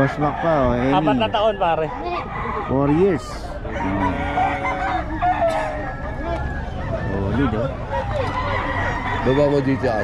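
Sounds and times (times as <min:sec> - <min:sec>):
murmur of crowd voices: 0:00.0 - 0:10.0
roosters crowing: 0:00.0 - 0:10.0.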